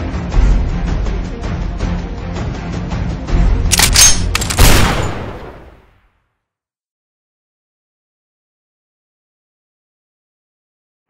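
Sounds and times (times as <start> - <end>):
background music: 0.0 - 5.9.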